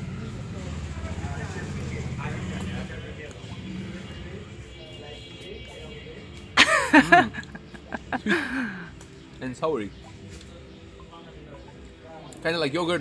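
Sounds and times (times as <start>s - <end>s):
engine humming: 0.0s - 4.5s
faint voices: 0.0s - 13.0s.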